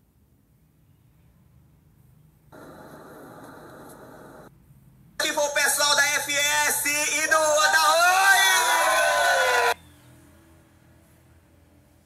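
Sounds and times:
faint high whine: 2.5 - 4.6
steady rushing noise: 2.5 - 4.6.

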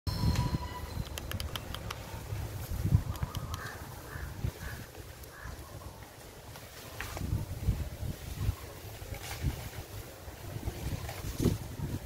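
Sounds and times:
sharp clicks: 0.4 - 2.1, 3.0 - 3.8
bird calling: 3.0 - 6.2.

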